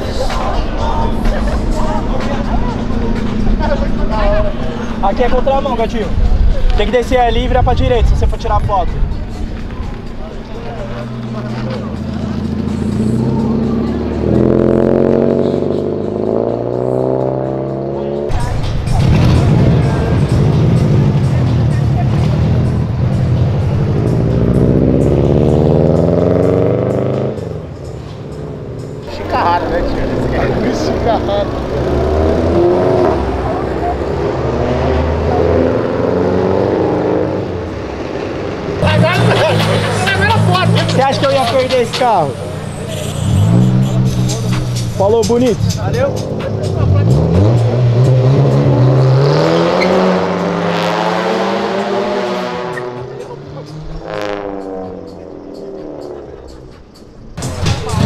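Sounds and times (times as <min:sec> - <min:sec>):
background music: 0:00.0 - 0:58.0
car engine accelerating hard: 0:10.4 - 0:58.0.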